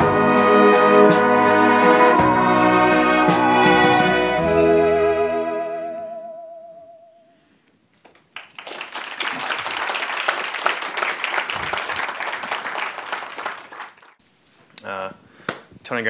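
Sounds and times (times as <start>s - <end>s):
audience applauding: 8.3s - 14.2s.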